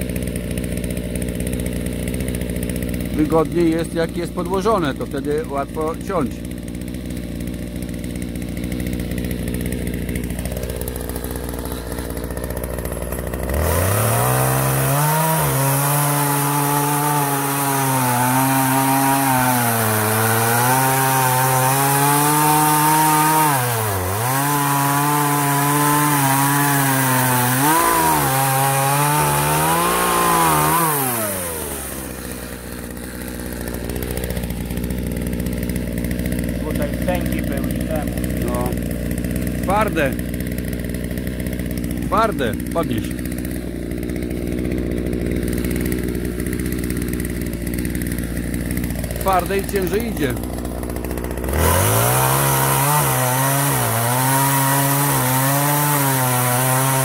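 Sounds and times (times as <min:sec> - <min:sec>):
chainsaw cutting through log: 0:00.0 - 0:57.0.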